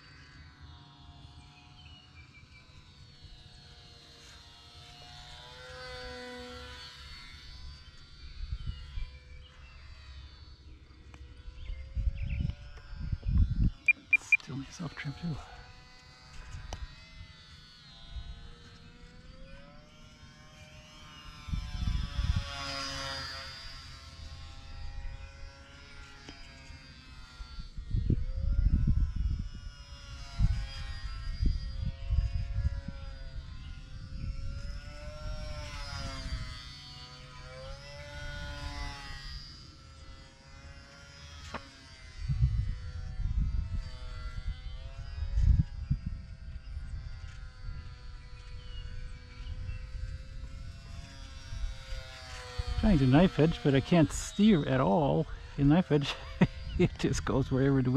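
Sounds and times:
rc plane electric motor buzzing: 0.0 - 57.9
wind rumbling on microphone: 7.6 - 9.6, 11.4 - 17.4, 21.2 - 37.4, 42.1 - 57.9.

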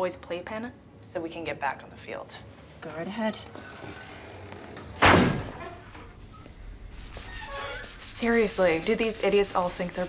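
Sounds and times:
door slamming in tiled room: 4.9 - 6.2.

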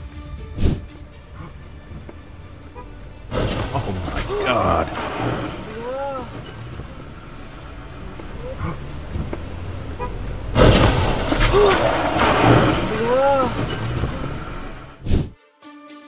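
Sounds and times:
loud rushing noise: 2.8 - 15.3
rising and falling voice-like cries: 11.3 - 14.7.

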